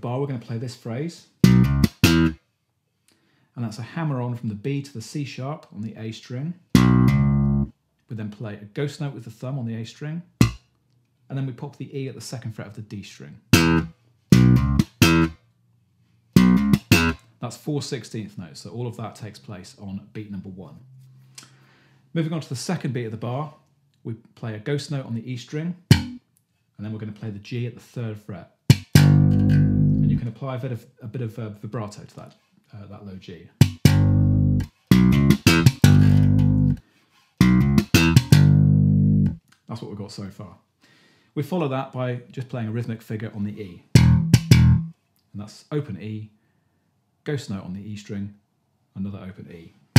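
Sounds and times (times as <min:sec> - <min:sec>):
slap bass guitar phrase: 0:01.4 - 0:02.4, 0:06.8 - 0:07.7, 0:13.6 - 0:15.4, 0:16.4 - 0:17.2, 0:25.9 - 0:26.2, 0:28.7 - 0:30.3, 0:33.6 - 0:36.8, 0:37.4 - 0:39.4, 0:43.9 - 0:44.9.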